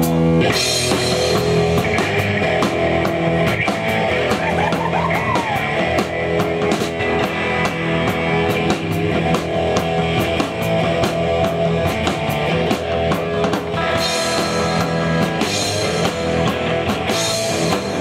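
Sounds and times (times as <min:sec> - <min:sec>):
distorted guitar chords: 0:00.0 - 0:18.0
live rock band playing: 0:00.0 - 0:18.0.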